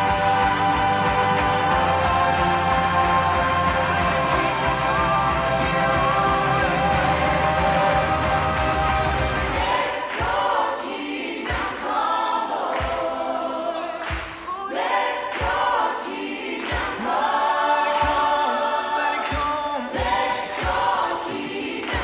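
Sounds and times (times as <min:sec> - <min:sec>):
low thumping beat: 0:00.0 - 0:10.7
group of voices singing: 0:00.0 - 0:22.0.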